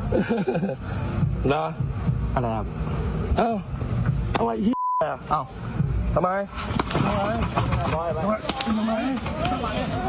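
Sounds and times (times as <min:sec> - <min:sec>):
censor bleep: 0:04.7 - 0:05.2.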